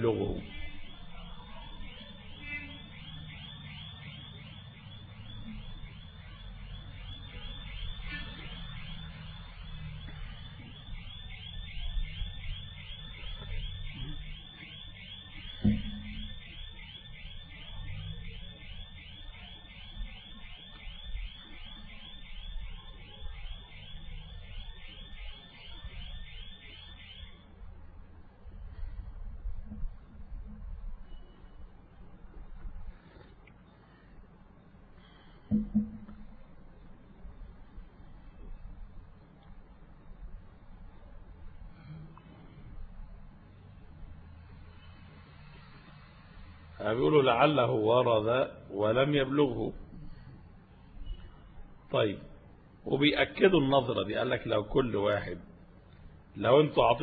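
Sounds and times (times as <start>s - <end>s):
electronic alarm beeping: 0.0s - 27.6s
thump: 15.6s - 16.2s, 35.5s - 36.3s.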